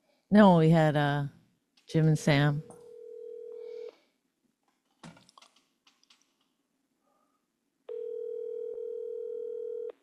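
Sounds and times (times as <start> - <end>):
telephone ringback tone: 2.9 - 3.9, 7.9 - 10.0.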